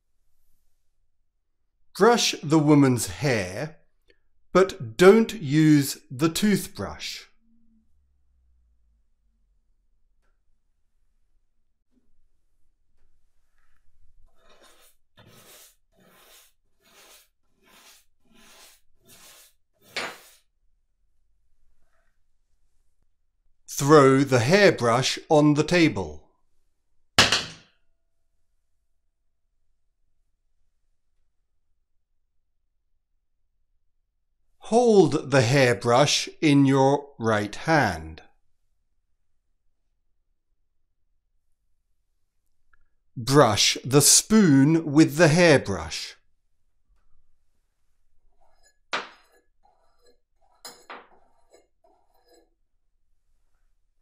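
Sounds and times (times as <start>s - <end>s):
hairbrush bristles scratching: 13.3s - 20.5s, 47.4s - 52.6s
hairbrush thunk on table: 27.2s - 27.7s.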